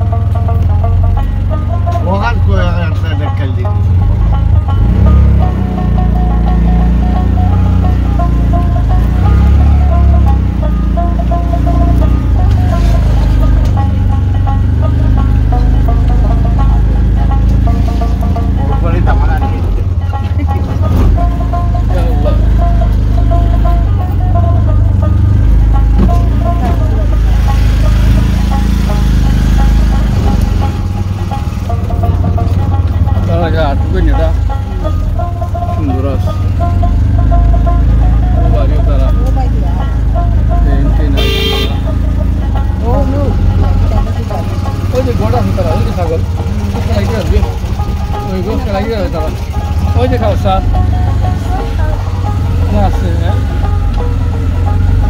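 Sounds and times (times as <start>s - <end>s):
low rumble of ride: 0.0s - 55.0s
short horn toot: 41.2s - 41.9s.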